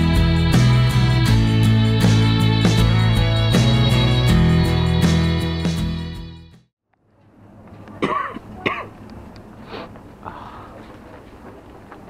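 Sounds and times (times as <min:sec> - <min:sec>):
man coughing: 0:08.0 - 0:08.9.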